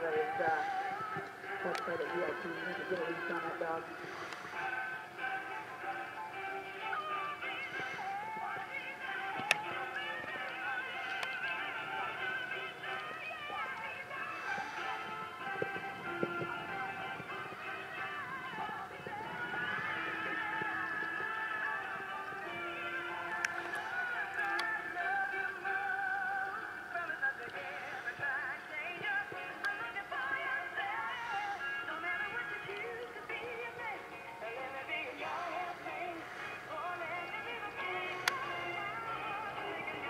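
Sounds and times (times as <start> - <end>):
background music with singing: 0.0 - 40.0.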